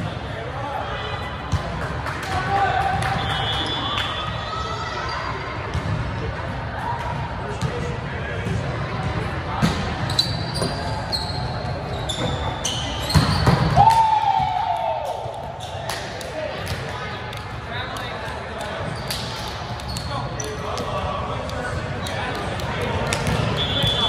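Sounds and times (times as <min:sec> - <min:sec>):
chatter in hall: 0:00.0 - 0:24.0
sneaker squeaks: 0:05.0 - 0:06.0, 0:09.6 - 0:13.8, 0:18.8 - 0:21.2, 0:23.1 - 0:24.0.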